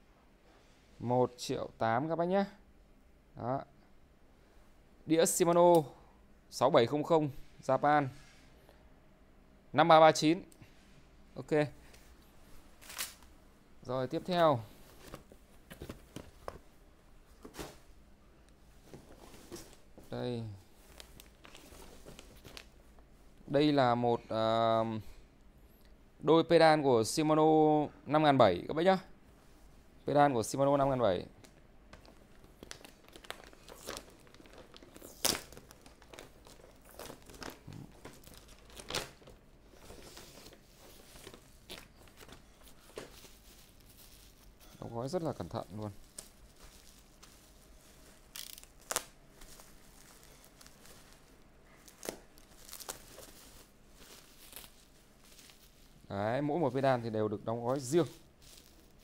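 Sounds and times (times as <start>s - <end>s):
plastic bag crinkling and tearing: 32.3s - 39.4s, 45.4s - 56.0s
items moved in a cardboard box: 32.6s - 47.7s.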